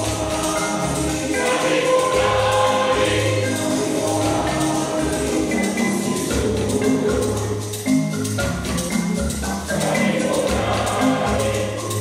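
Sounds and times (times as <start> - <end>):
groups singing in chorus: 0.0 - 7.9, 9.6 - 12.0
backing track: 0.0 - 12.0.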